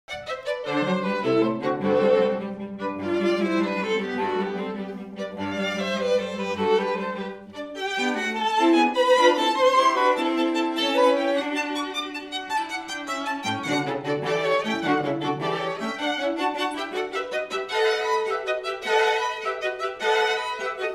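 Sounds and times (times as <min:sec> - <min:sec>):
string quartet playing: 0:00.1 - 0:20.9
violins playing high line: 0:00.1 - 0:20.9.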